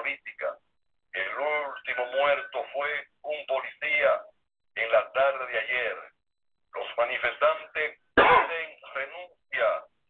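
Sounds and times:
man speaking: 0.0 - 10.0
man clearing throat: 8.2 - 8.6.

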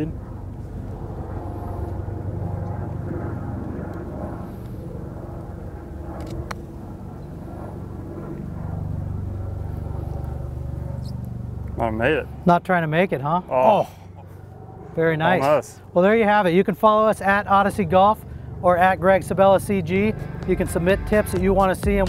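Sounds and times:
engine drone: 0.0 - 16.2, 16.8 - 22.0.

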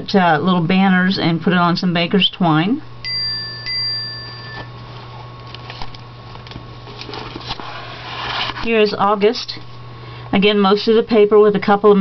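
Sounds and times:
steady low hum: 0.0 - 12.0
thin high ringing tone: 3.0 - 4.7
plastic page sleeves rustling: 4.8 - 9.0.

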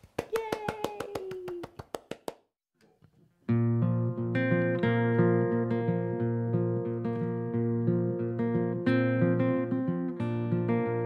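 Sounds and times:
hand claps: 0.0 - 2.5
guitar strumming chords: 3.5 - 11.0.

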